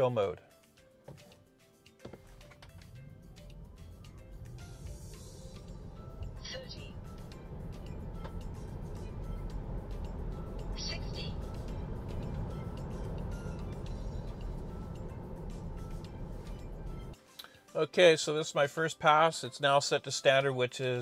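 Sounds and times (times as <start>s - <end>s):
background music: 0.0s - 21.0s
road and tyre rumble in car: 2.2s - 17.2s.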